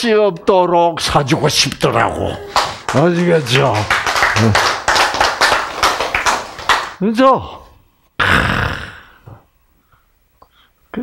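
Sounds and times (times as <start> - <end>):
sharp hand claps: 2.5 - 7.0.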